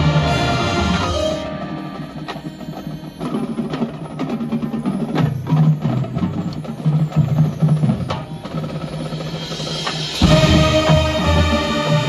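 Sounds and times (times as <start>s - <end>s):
marching band playing: 0.0s - 12.0s
sharp percussion strikes: 0.0s - 12.0s.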